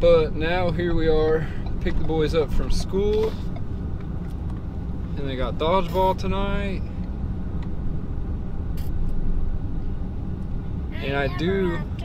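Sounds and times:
road and engine rumble in cabin: 0.0s - 12.0s.

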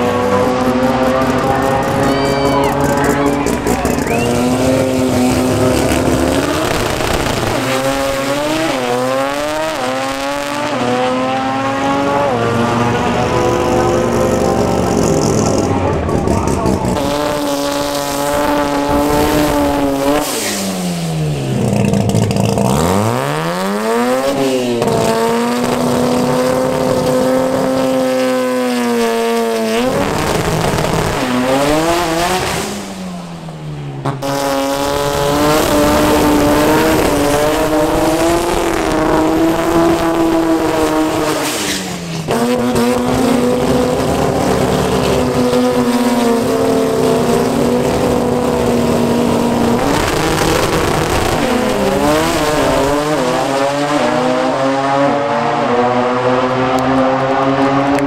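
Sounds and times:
car engines revving high: 0.0s - 58.0s.

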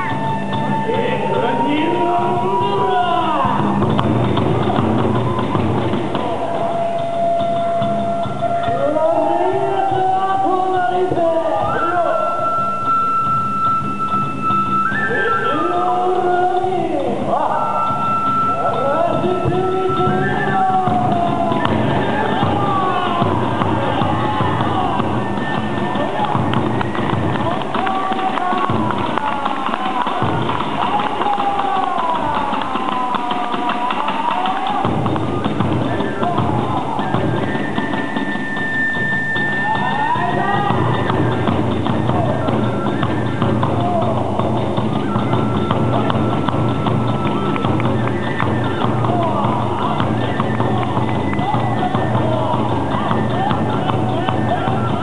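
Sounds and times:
drum beat: 0.0s - 55.0s
flute melody: 0.0s - 55.0s.

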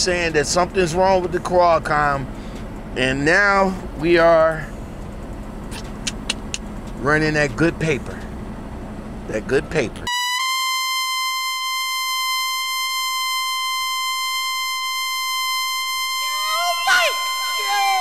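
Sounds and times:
steady buzzing tone: 10.1s - 18.0s
swooping synth sounds: 10.1s - 18.0s.

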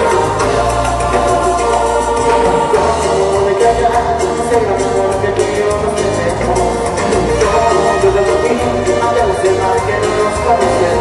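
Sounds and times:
choir-like voices singing: 0.0s - 11.0s
congas: 0.0s - 11.0s
keyboard: 0.0s - 11.0s.

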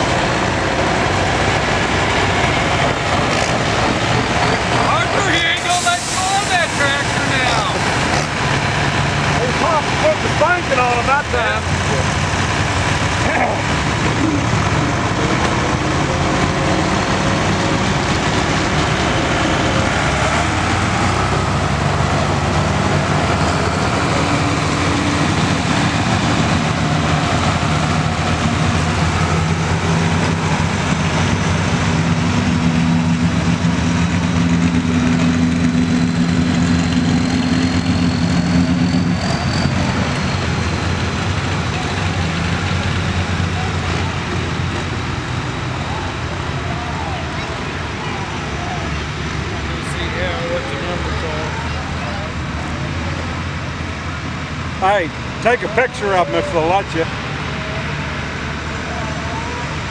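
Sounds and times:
tractor engine under heavy load: 0.0s - 59.9s.

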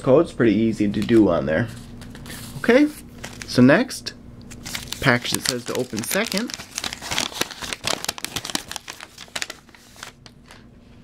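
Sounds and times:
paper wrapping crinkling: 2.0s - 3.6s, 4.5s - 10.7s.

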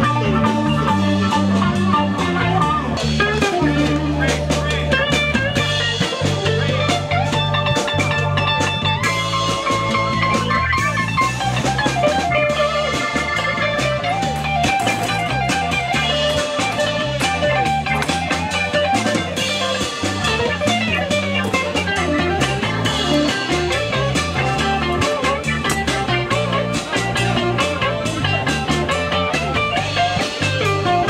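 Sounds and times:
drum kit: 0.0s - 31.0s
electric guitar: 0.0s - 31.0s
keyboard: 0.0s - 31.0s
upright bass: 0.0s - 31.0s.

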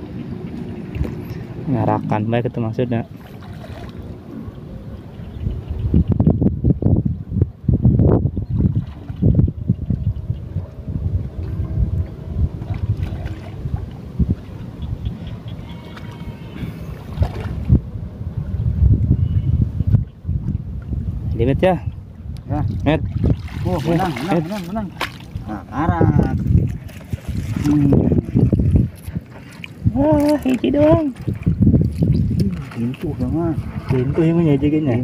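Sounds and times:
water sloshing and splashing: 0.0s - 4.7s, 8.4s - 17.9s, 21.9s - 35.0s
wind rumbling on microphone: 0.0s - 35.0s.

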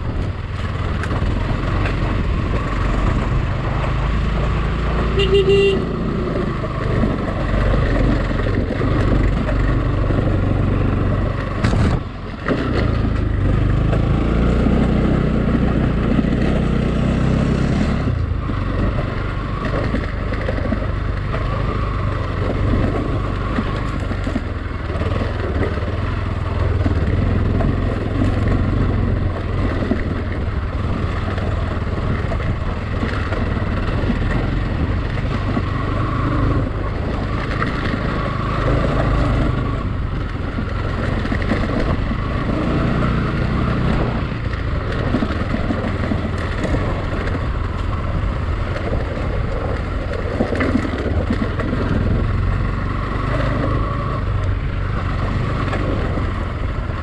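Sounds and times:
motorcycle engine running: 0.0s - 57.0s.

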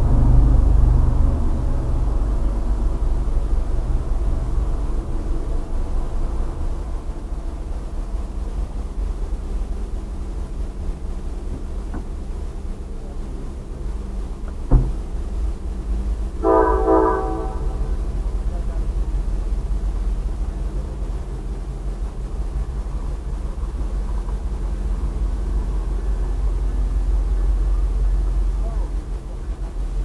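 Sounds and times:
low rumble: 0.0s - 30.0s
train air horn blast: 16.4s - 18.1s.

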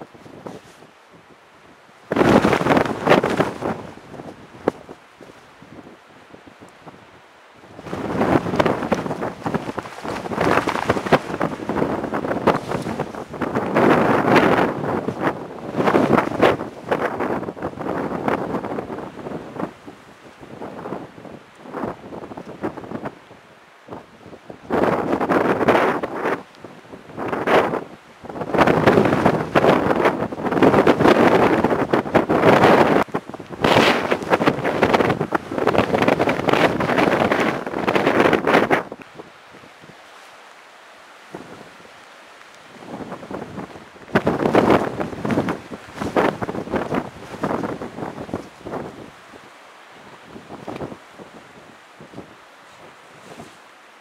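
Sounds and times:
wind buffeting microphone: 0.0s - 40.1s, 40.9s - 53.7s.

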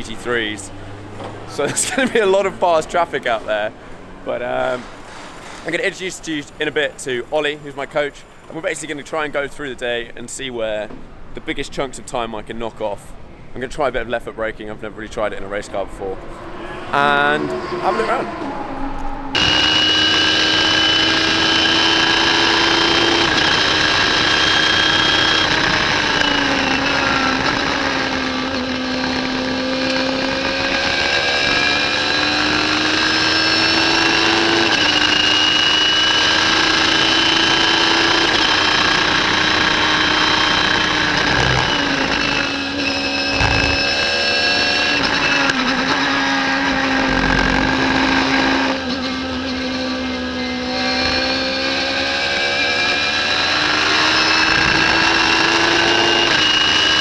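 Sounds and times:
race car engine at high revs: 16.3s - 57.0s.

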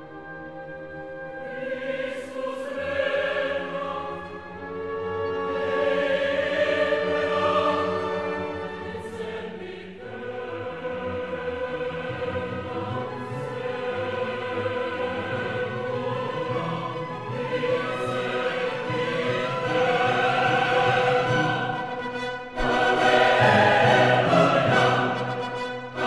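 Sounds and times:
choir singing long held notes: 0.0s - 26.0s.

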